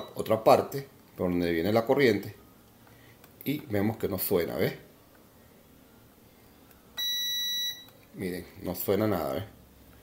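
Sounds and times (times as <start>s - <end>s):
multimeter high-pitched beep: 0.0s - 0.3s, 7.0s - 8.0s.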